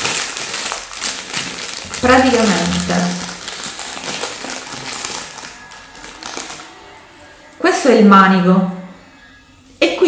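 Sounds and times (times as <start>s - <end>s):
plastic packaging crinkling: 0.0s - 7.6s.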